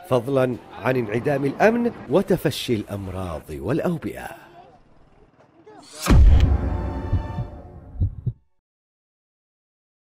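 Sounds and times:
low heartbeat-like thumps: 6.1s - 8.5s.

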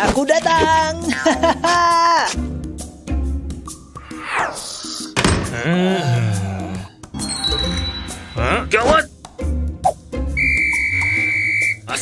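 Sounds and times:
background music: 0.0s - 12.0s
police whistle blast: 10.4s - 11.9s.

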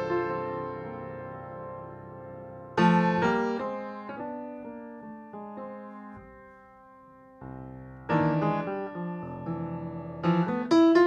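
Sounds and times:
slow piano melody: 0.0s - 11.0s.

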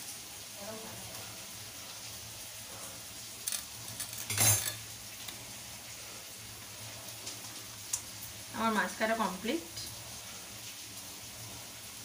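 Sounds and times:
plate clatter: 3.5s - 4.9s
steel plate clinking and scraping: 3.5s - 4.9s.

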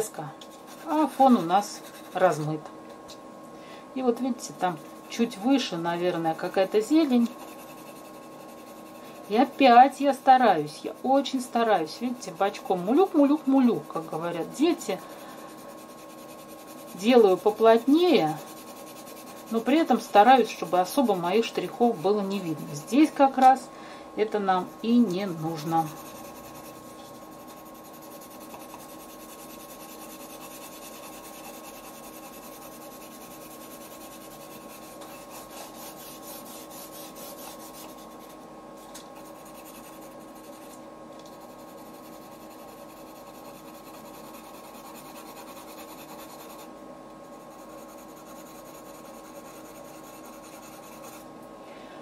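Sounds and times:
pencil scratching on paper: 0.6s - 2.4s, 4.5s - 10.2s, 10.8s - 22.5s, 24.5s - 38.4s, 39.2s - 51.2s.

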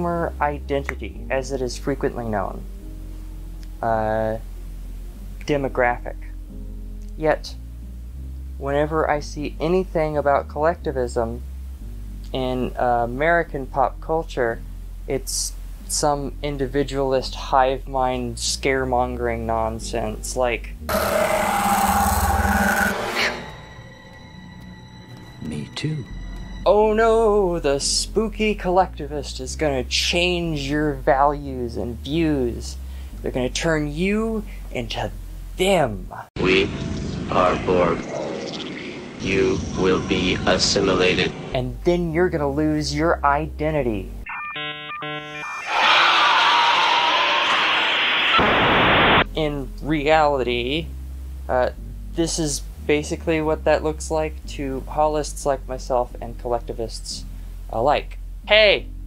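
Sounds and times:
harsh inhuman shriek: 20.9s - 23.6s, 45.5s - 48.7s
steady electronic tones: 20.9s - 26.6s, 44.2s - 46.2s.

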